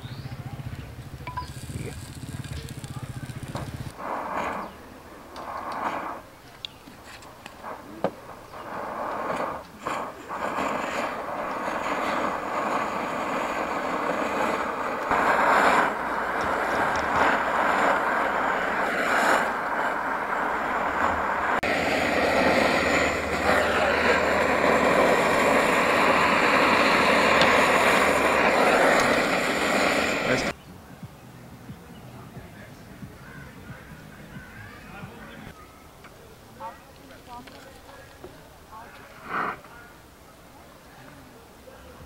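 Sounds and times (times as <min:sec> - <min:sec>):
gas burner hiss: 0:01.0 - 0:30.6, 0:37.0 - 0:40.1.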